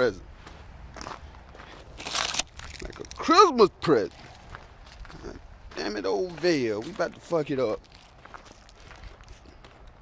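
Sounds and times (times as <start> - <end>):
plastic wrap crinkling: 2.0 - 3.2.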